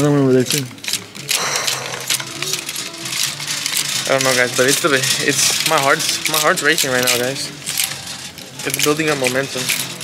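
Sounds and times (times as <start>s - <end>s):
plastic hangers clicking on metal rail: 3.6s - 10.0s.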